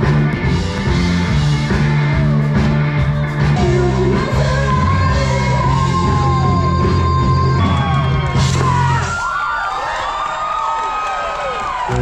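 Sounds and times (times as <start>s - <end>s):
heavy bass: 0.0s - 9.2s
drums: 0.0s - 9.6s
voices whooping: 5.8s - 12.0s.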